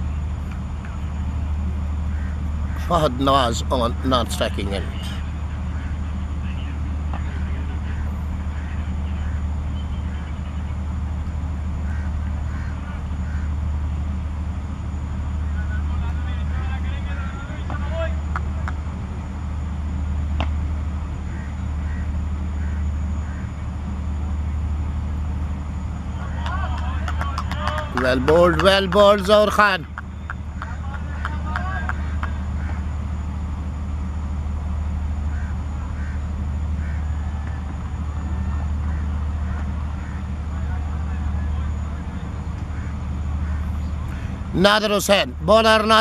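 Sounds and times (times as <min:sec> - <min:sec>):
low outdoor rumble: 0:00.0 - 0:46.0
faint distant voices: 0:04.5 - 0:11.2, 0:35.3 - 0:44.5.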